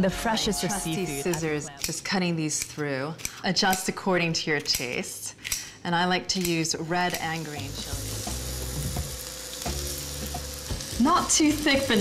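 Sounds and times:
pancake batter sizzling in pan: 0:07.6 - 0:12.0.

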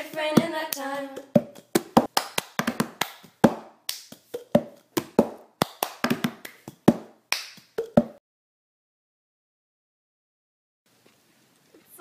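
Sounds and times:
hand claps: 0:00.4 - 0:08.2.

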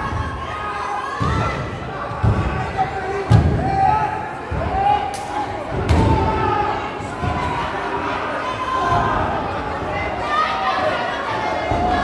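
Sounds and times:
voices shouting in a hall: 0:00.0 - 0:12.0.

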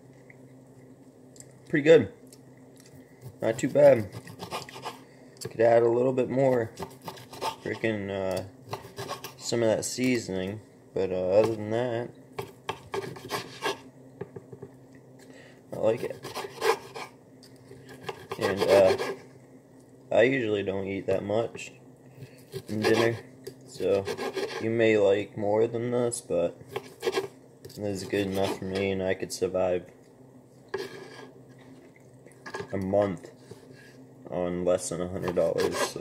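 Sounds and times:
utensil scraping a plate: 0:03.5 - 0:05.0, 0:06.8 - 0:07.9, 0:08.7 - 0:09.5, 0:12.4 - 0:13.8, 0:16.0 - 0:17.2, 0:17.8 - 0:19.2, 0:22.5 - 0:24.7, 0:26.7 - 0:27.3, 0:27.9 - 0:28.9, 0:30.7 - 0:31.4, 0:35.2 - 0:36.0.

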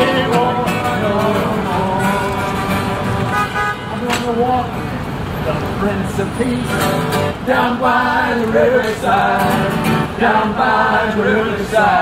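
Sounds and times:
street traffic: 0:00.0 - 0:12.0
short horn toot: 0:03.3 - 0:04.0.

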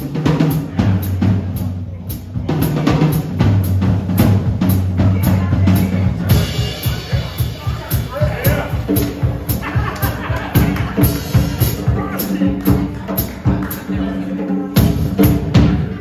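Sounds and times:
cymbals washing: 0:00.0 - 0:14.0
tom and bass drum beat: 0:00.0 - 0:16.0.

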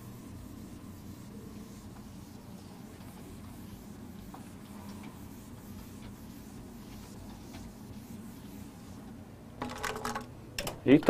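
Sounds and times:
whiteboard eraser rubbing: 0:00.0 - 0:10.1.

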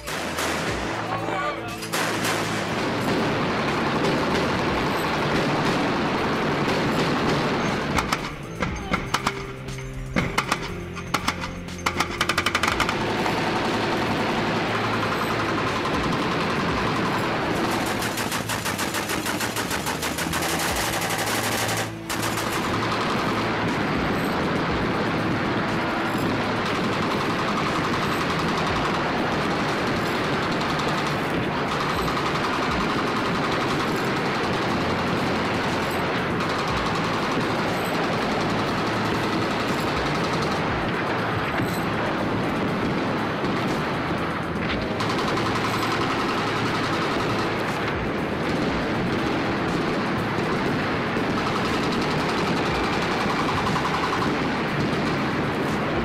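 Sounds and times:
automatic gun firing: 0:00.0 - 0:01.2, 0:01.8 - 0:08.4, 0:10.2 - 0:23.8, 0:51.3 - 0:55.4
background music: 0:00.0 - 0:56.0.

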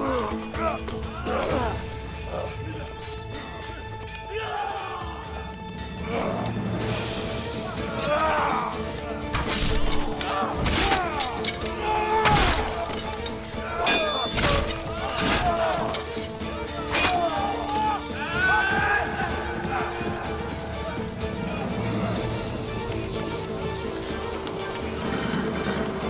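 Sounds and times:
wordless shouting voices: 0:00.0 - 0:22.4
soundtrack music: 0:00.0 - 0:26.0.

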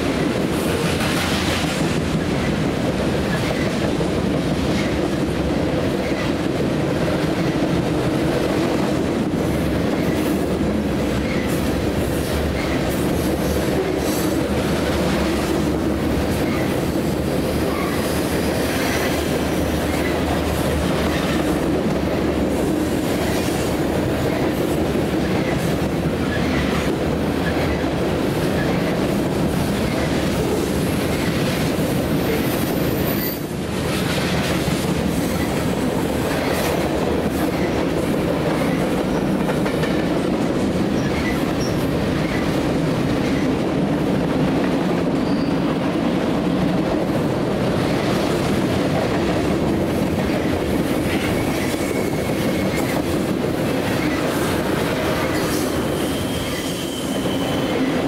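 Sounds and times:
freight train rumbling past: 0:00.0 - 0:58.0.

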